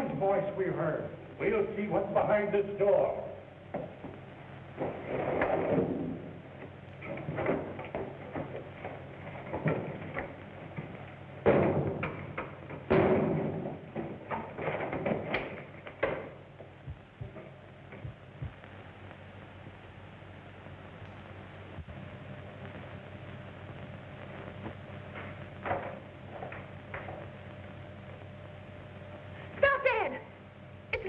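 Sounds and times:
old film soundtrack hiss: 0.0 - 31.0.

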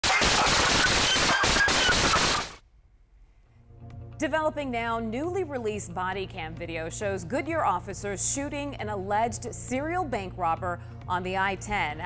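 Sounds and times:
rapid handgun fire: 0.0 - 2.6.

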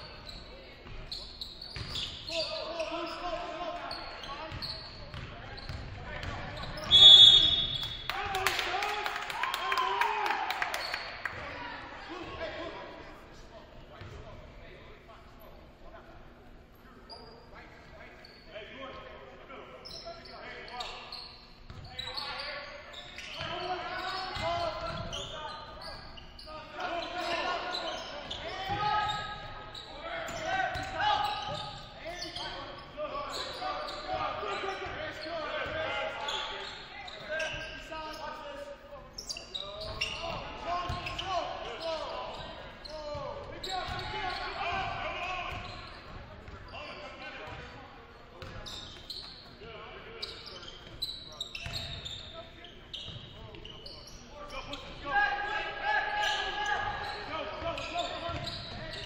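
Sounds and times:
voices calling out echoing: 0.0 - 59.0.

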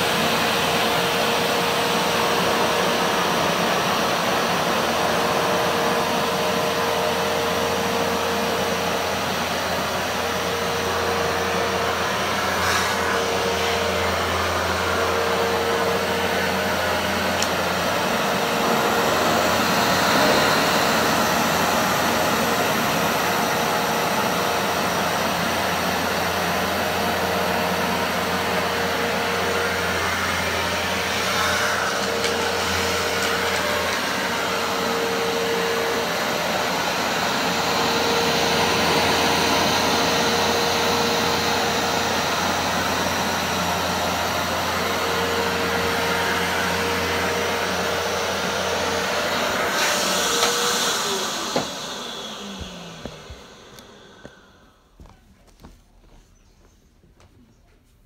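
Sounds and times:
carpet cleaner motor and suction: 0.0 - 55.7.

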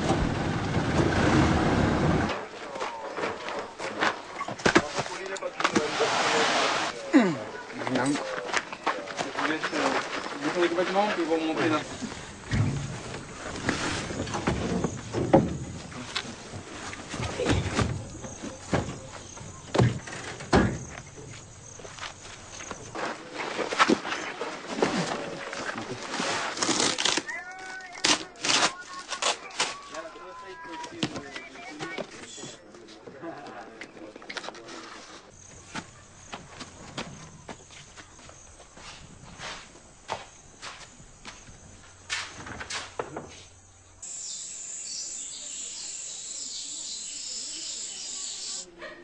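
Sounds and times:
voices talking: 2.3 - 12.3, 15.8 - 26.1, 27.2 - 36.4, 44.0 - 49.0
insects chirping: 7.0 - 25.9, 35.3 - 48.8
birds chirping: 13.2 - 23.0, 43.4 - 48.7.

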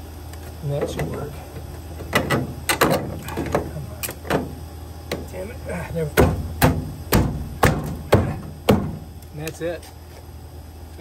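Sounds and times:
sharp knocks on plastic: 6.2 - 9.0.

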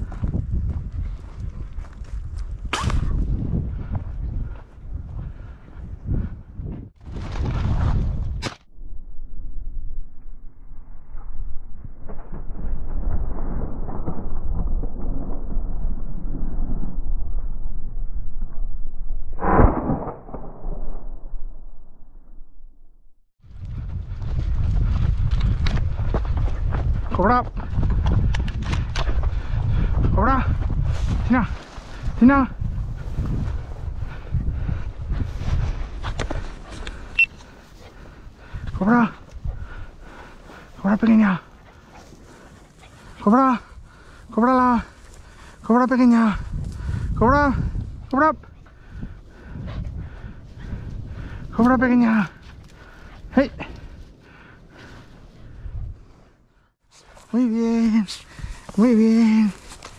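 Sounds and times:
footsteps crunching on dirt: 0.0 - 2.6
footsteps on dirt track: 0.0 - 2.7, 23.5 - 32.2, 58.1 - 59.9
wind buffeting microphone: 0.0 - 8.5, 23.4 - 56.4, 58.2 - 59.9
low rumble: 0.0 - 56.8.

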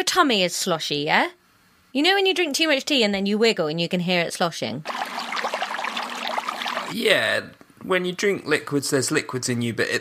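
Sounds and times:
wet liquid sloshing: 4.8 - 7.0.

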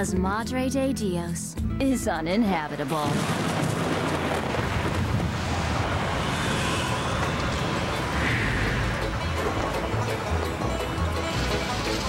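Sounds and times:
driving rain: 3.0 - 12.0
steady wind: 3.3 - 11.7
low rumble: 4.3 - 11.2.

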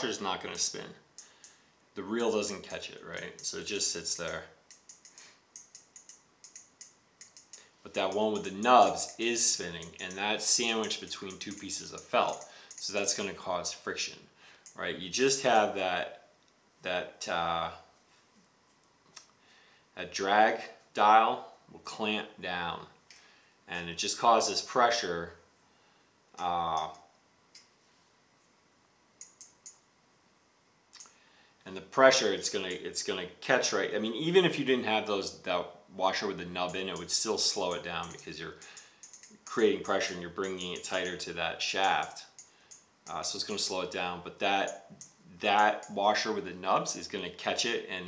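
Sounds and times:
fishing reel ticking: 3.1 - 13.2, 36.6 - 41.2.

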